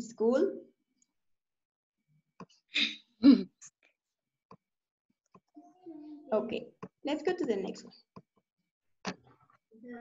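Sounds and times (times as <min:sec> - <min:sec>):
person clearing throat: 0:03.2 - 0:03.6.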